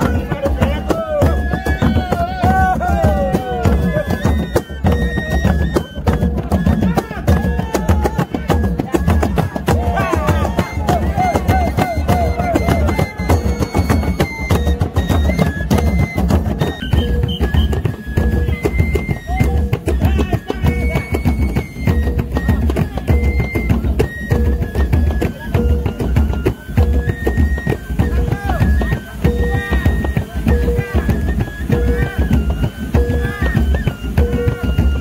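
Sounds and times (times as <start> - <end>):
hand drums fast rhythm: 0.0 - 35.0
pitched tone: 0.0 - 35.0.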